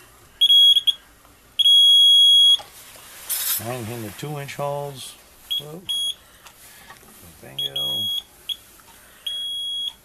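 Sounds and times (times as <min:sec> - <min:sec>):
high electronic alarm beeps: 0:00.4 - 0:01.0, 0:01.6 - 0:02.6, 0:05.5 - 0:06.2, 0:07.5 - 0:08.6, 0:09.2 - 0:10.0.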